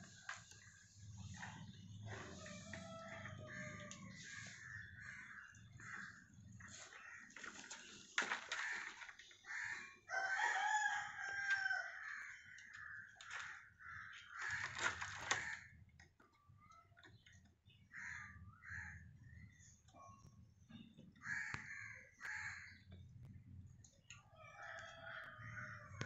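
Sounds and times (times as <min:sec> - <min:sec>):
rooster crowing: 0:02.3 - 0:04.1, 0:10.1 - 0:12.4, 0:24.4 - 0:26.0.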